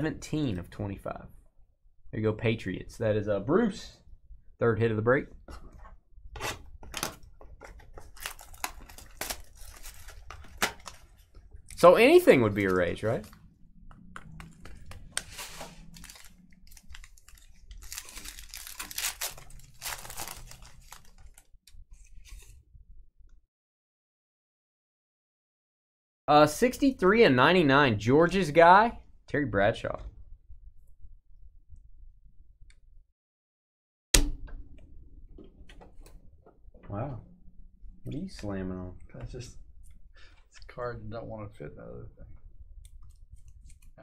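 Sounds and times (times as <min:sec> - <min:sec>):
wrapper crinkling and tearing: 0:08.0 - 0:13.4, 0:14.4 - 0:21.6.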